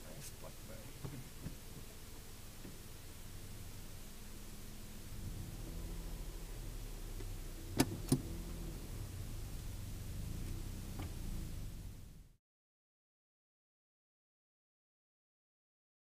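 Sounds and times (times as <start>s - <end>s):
car engine running: 0.0s - 12.4s.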